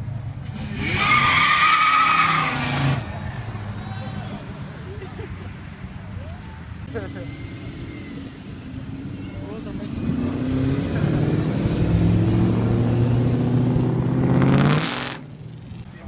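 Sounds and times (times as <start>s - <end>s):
car engine accelerating past: 9.8s - 15.2s.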